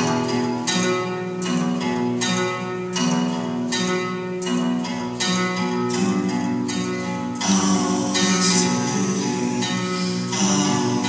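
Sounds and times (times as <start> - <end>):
guitar chords strummed: 0.0 - 11.0.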